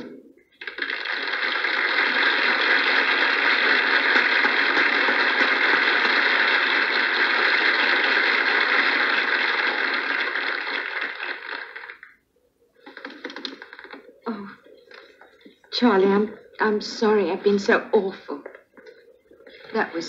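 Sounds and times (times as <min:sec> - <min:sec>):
audience applauding: 0:00.0 - 0:12.2.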